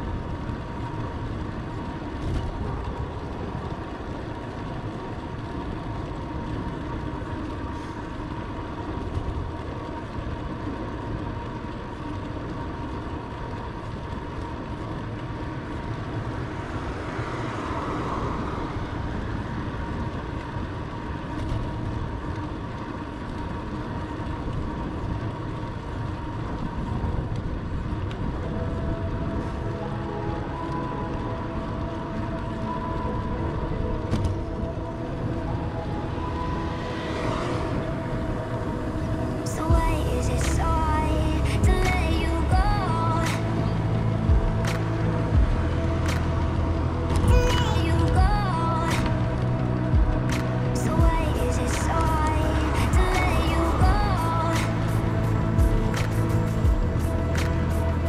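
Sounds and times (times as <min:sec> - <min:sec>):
bicycle tyre and road noise: 0:00.0 - 0:58.0
wind rushing over microphone: 0:00.0 - 0:58.0.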